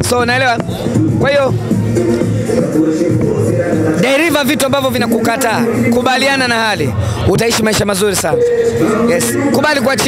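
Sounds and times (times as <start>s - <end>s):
man talking: 0.0s - 1.6s, 3.9s - 8.4s, 9.0s - 10.0s
hip-hop music with rapping: 0.0s - 10.0s.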